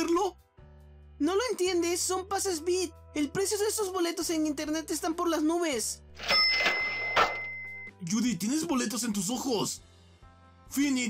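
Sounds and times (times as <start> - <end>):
cash register bell ringing: 6.2 - 7.9
cash register rattle: 6.2 - 7.9.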